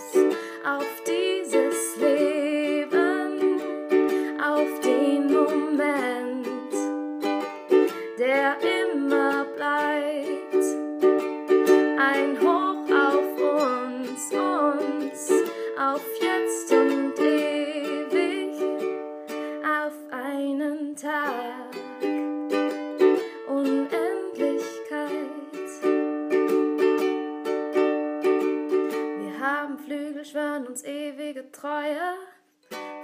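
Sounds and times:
person singing wordless melody: 0.0s - 7.0s, 7.8s - 22.0s, 23.1s - 25.9s
ukulele strumming chords: 0.0s - 30.6s, 32.7s - 33.0s.

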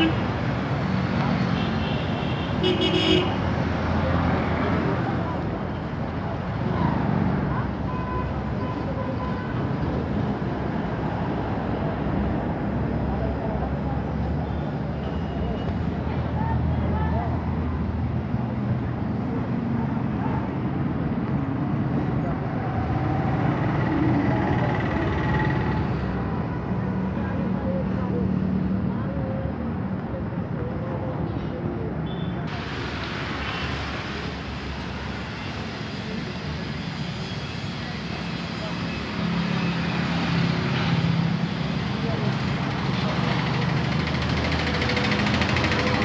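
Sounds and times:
engines and street traffic rumble: 0.0s - 46.0s.

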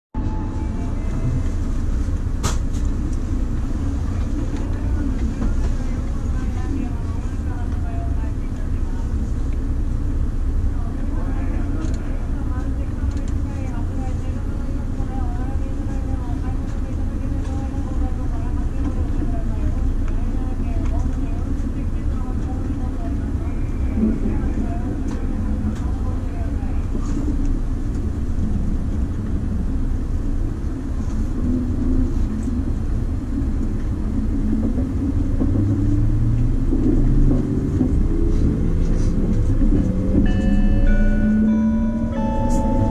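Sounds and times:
train interior rumble: 0.1s - 42.9s
voices: 3.0s - 9.7s, 10.6s - 29.3s.

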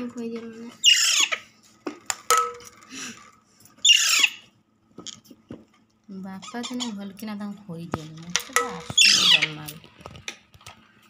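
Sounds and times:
parakeet chick shrill squawk: 0.8s - 1.4s, 3.8s - 4.4s, 9.0s - 9.6s.

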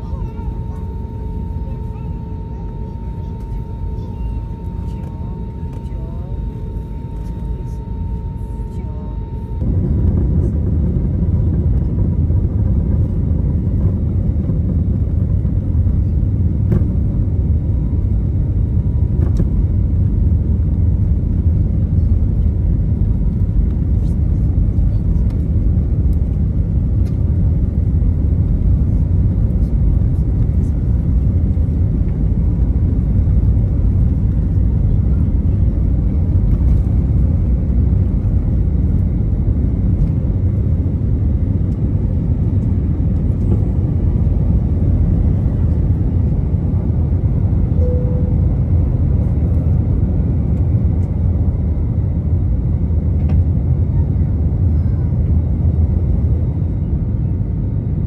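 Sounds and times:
jet engines and wheels rumbling: 0.0s - 58.0s.

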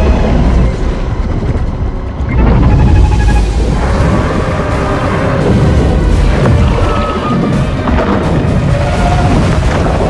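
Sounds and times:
deep heavy rumble: 0.0s - 10.0s.

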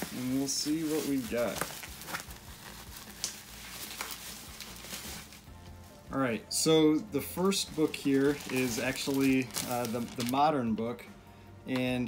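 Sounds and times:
bubble wrap clicks: 0.0s - 5.5s
bubble wrap crinkling: 0.0s - 10.6s.

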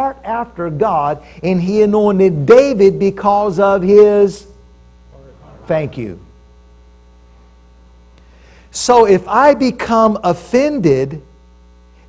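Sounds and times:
electrical mains hum: 0.0s - 12.0s
person speaking: 5.1s - 6.4s, 8.7s - 11.2s.

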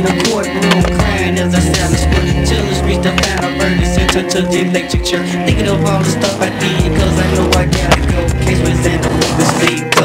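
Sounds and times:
skateboard wheels rolling on concrete: 0.0s - 4.7s, 5.6s - 10.0s
hip hop music with bass line: 0.0s - 10.0s.

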